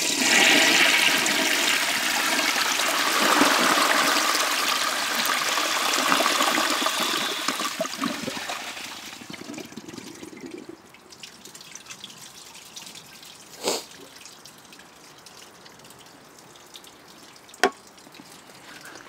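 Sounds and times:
toilet flushing: 0:00.0 - 0:10.8.

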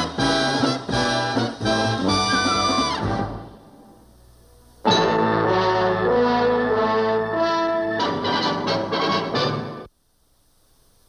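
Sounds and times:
tv theme music chords: 0:00.0 - 0:04.2, 0:04.8 - 0:09.9
faint hiss: 0:09.6 - 0:11.0.

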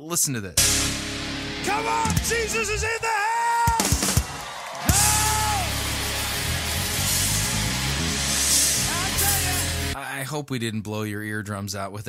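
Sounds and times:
live rock band music: 0:00.6 - 0:03.0, 0:03.7 - 0:10.0
drums: 0:00.6 - 0:10.0
electric guitar: 0:04.9 - 0:10.0.

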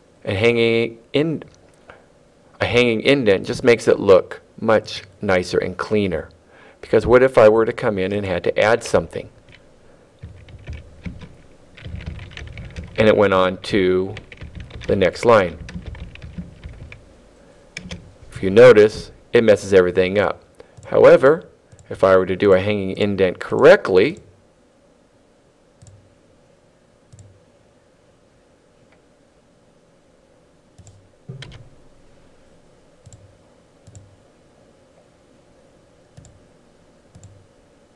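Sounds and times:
computer keyboard typing: 0:10.2 - 0:13.2, 0:14.1 - 0:17.0, 0:17.8 - 0:18.0.

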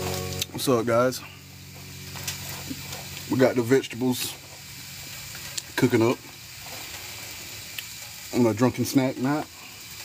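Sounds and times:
vegetables sizzling in oil: 0:00.0 - 0:10.0.

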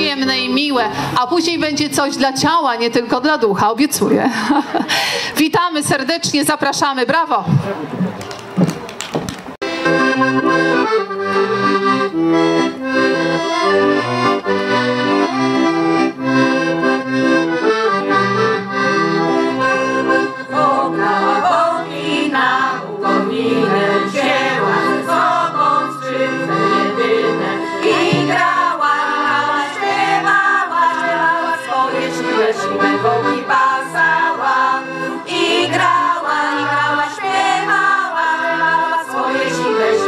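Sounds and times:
piano accordion playing folk tune: 0:00.0 - 0:03.4, 0:09.6 - 0:40.0
people clapping: 0:08.1 - 0:09.5.

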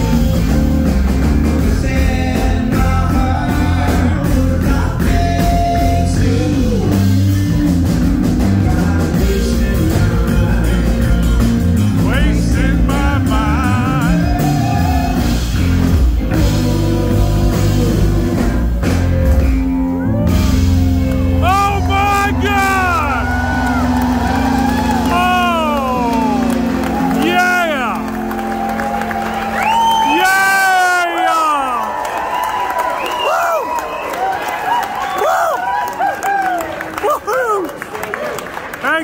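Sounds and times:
live rock band playing: 0:00.0 - 0:31.9
audience whooping: 0:13.6 - 0:15.7, 0:19.8 - 0:38.8.

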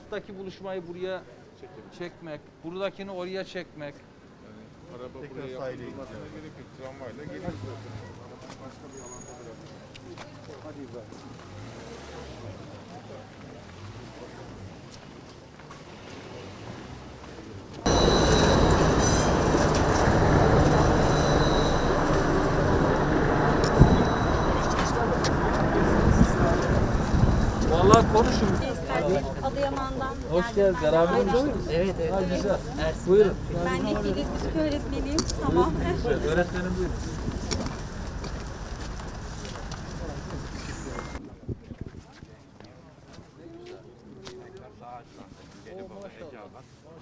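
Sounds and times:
voices murmuring: 0:17.4 - 0:41.2
tram rumbling past: 0:17.8 - 0:41.2
thin high whine: 0:17.9 - 0:28.1.

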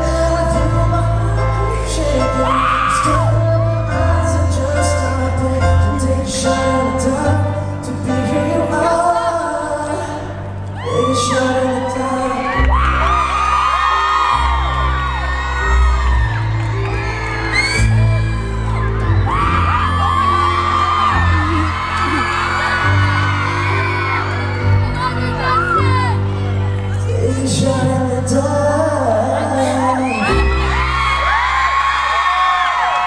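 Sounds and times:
crowd screaming and cheering: 0:00.0 - 0:33.0.

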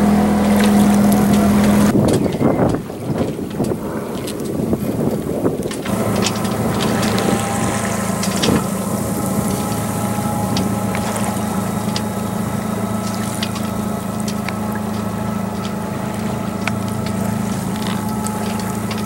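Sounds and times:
boat motor humming: 0:00.0 - 0:19.0
water noise: 0:00.0 - 0:19.0
wind: 0:00.0 - 0:19.0.

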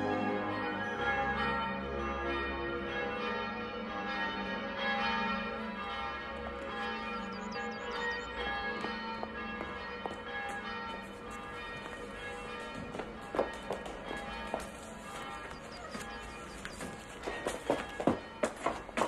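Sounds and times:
church bells pealing: 0:00.0 - 0:19.0.

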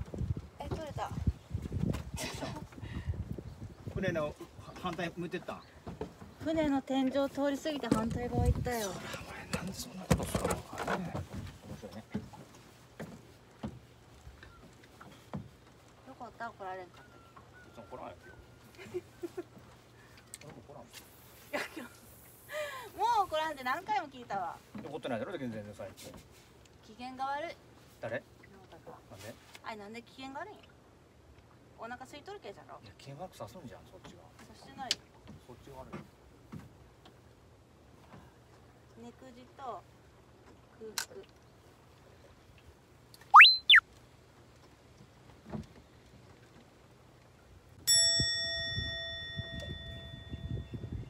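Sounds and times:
comic slide whistle: 0:43.2 - 0:43.8
faint thin steady tone: 0:47.9 - 0:51.0.

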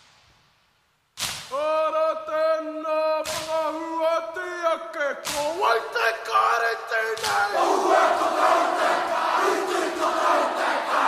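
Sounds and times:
crowd chanting: 0:07.1 - 0:11.0.

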